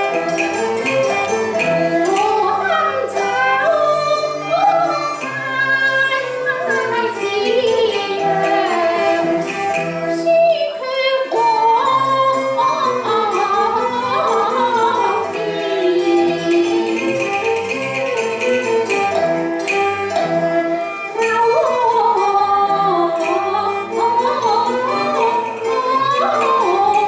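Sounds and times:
instrumental accompaniment: 0.0s - 27.0s
opera singing: 2.0s - 9.5s, 10.1s - 17.5s, 21.2s - 27.0s.

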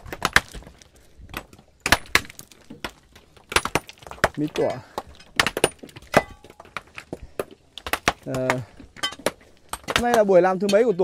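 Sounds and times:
sledgehammers striking rock: 0.0s - 10.8s.

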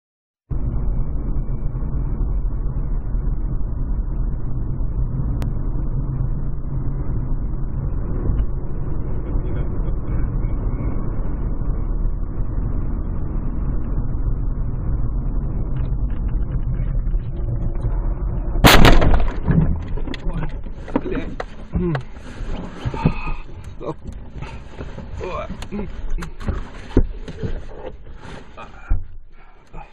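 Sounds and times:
car engine and road rumble: 0.5s - 29.9s
windshield shattering: 18.6s - 22.4s
car crash: 18.6s - 23.2s
rattles and knocks: 18.6s - 29.2s.

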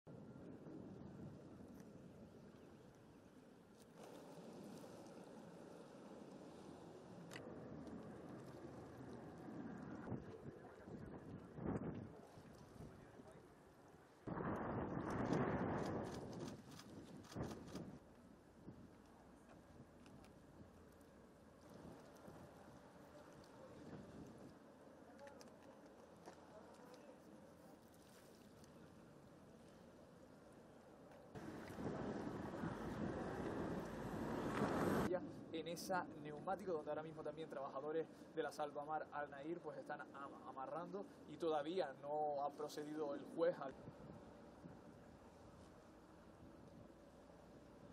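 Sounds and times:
low outdoor harbour rumble: 0.1s - 38.8s, 42.8s - 47.9s
wind on microphone: 7.4s - 13.2s, 14.3s - 19.0s, 31.4s - 35.1s.

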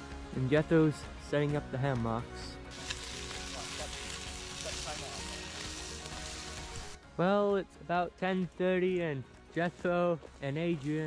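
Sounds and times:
hot dogs sizzling in a pan: 2.7s - 7.0s.

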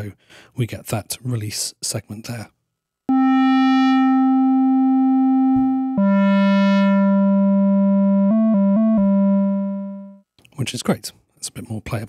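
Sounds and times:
square-wave synthesizer notes: 3.1s - 10.2s.

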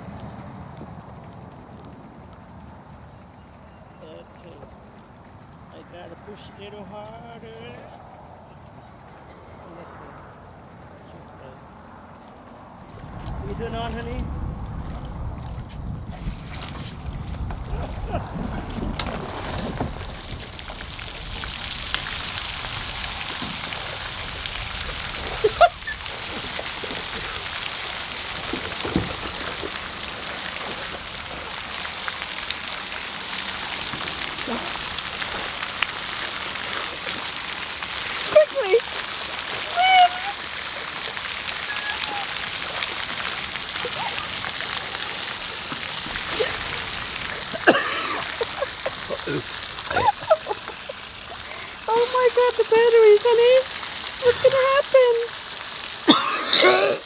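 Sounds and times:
fountain water splashing: 0.0s - 57.0s
short vocal cries: 41.6s - 42.4s.

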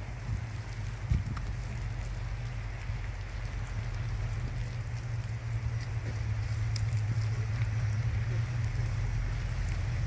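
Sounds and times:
hiss of falling wet snow: 0.0s - 10.0s
vehicle engine rumble: 0.0s - 10.0s.

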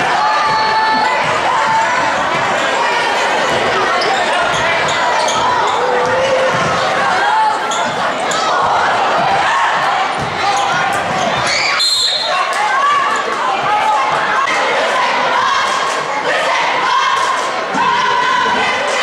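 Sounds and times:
spectators' voices: 0.0s - 19.0s
sneakers squeaking: 0.4s - 13.3s
referee's whistle: 11.5s - 12.5s.

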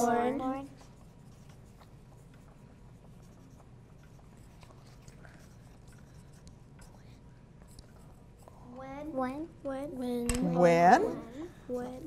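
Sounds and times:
pencils scratching on paper: 0.0s - 8.6s
pencil lead ticking on paper: 0.8s - 8.6s.

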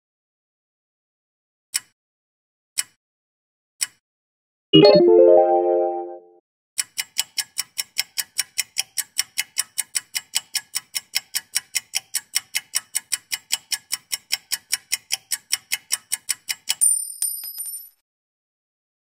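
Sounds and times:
clock ticking fast: 6.8s - 16.8s.

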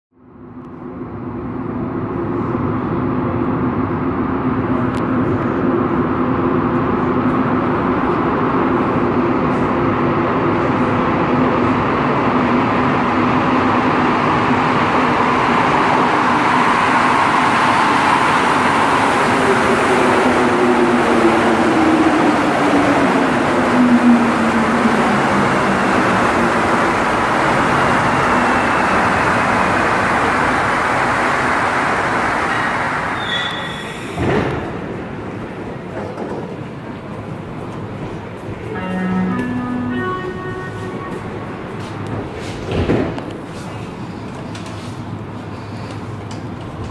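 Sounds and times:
train running gear rumble: 18.0s - 46.9s.

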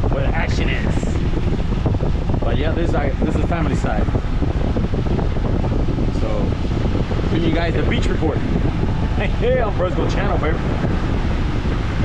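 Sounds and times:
boat running noise: 0.0s - 12.0s
water rushing: 0.0s - 12.0s
wind buffeting microphone: 0.0s - 12.0s.

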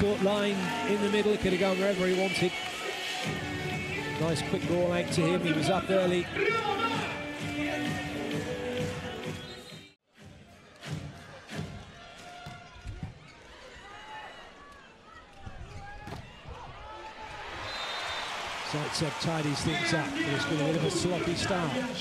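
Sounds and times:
crowd noise: 0.0s - 22.0s.

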